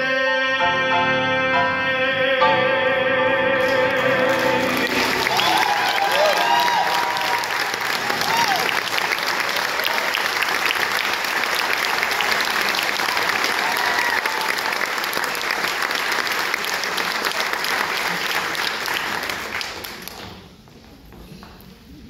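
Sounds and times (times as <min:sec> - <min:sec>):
audience applauding: 0:03.6 - 0:20.4.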